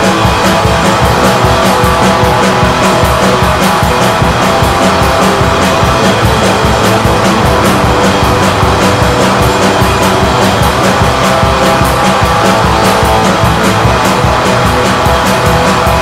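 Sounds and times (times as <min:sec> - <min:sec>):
distorted electric guitars: 0:00.0 - 0:16.0
fast drumming: 0:00.0 - 0:16.0.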